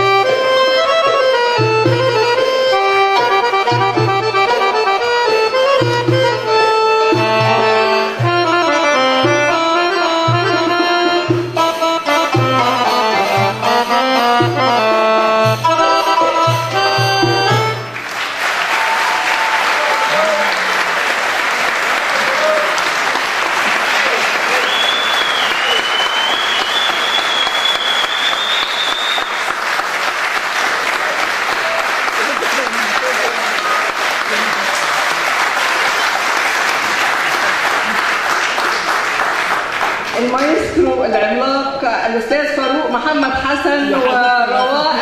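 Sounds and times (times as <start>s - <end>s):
audience applauding: 17.9s - 40.7s
long high whistle rising in pitch: 24.6s - 29.4s.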